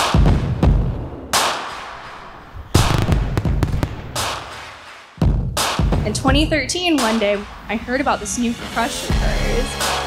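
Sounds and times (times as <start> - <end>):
fireworks booming and crackling: 0.2 - 5.0
sharp firework cracks: 0.8 - 5.2.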